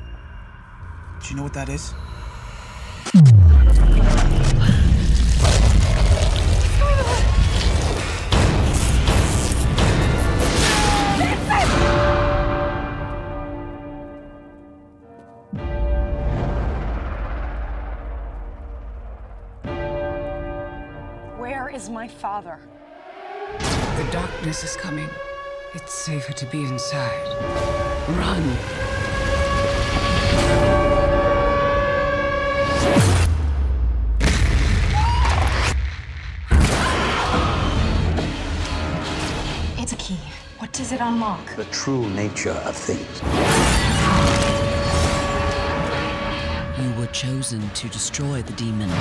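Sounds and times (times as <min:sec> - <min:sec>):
deep bell-like tone: 0:00.0 - 0:04.4
noisy crash: 0:03.0 - 0:06.2.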